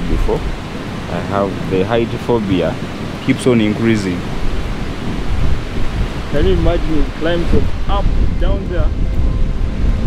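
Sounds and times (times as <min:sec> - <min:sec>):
wind on microphone: 0:00.0 - 0:10.0.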